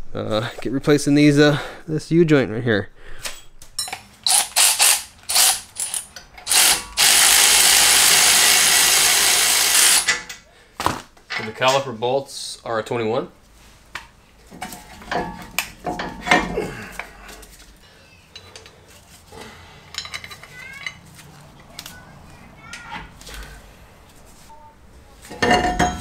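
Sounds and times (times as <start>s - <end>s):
metal clatter: 25.3s - 26.0s.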